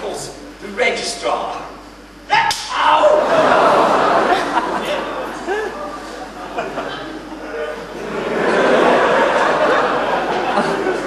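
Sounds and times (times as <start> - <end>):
sharp crack: 2.4 - 2.8.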